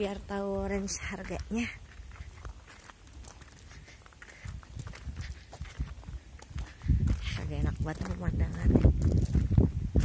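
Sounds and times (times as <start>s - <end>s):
footsteps walking: 0.0s - 10.0s.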